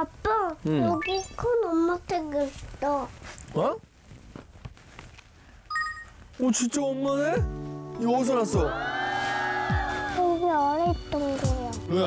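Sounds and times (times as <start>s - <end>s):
electronic chime: 0.8s - 1.4s, 5.7s - 6.1s.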